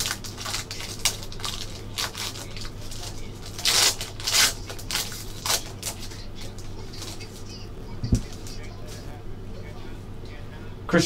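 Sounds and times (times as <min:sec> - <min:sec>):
foil wrapper crinkling and tearing: 0:00.0 - 0:07.6.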